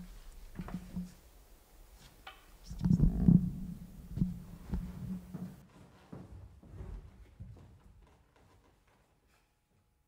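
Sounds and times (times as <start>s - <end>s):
soft handling thumps and knocks: 0.0s - 1.2s, 4.1s - 9.1s.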